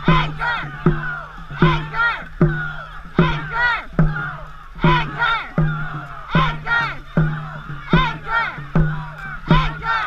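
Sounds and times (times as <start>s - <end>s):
crew shouting in rhythm: 0.0s - 10.0s
sharp low beat: 0.0s - 10.0s.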